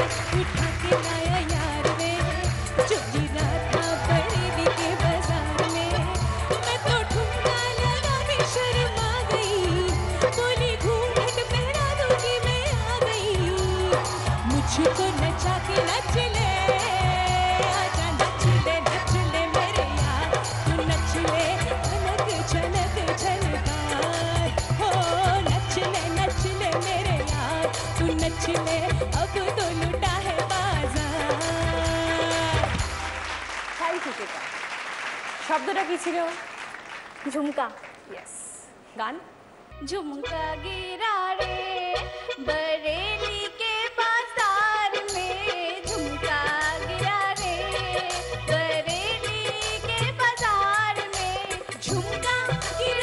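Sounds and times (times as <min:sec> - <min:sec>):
studio audience applauding: 0:00.0 - 0:10.6, 0:11.8 - 0:26.2, 0:31.1 - 0:38.4
woman singing with vibrato: 0:00.0 - 0:33.0, 0:39.8 - 0:53.0
instrumental backing with steady beat: 0:00.0 - 0:33.5, 0:39.7 - 0:53.0.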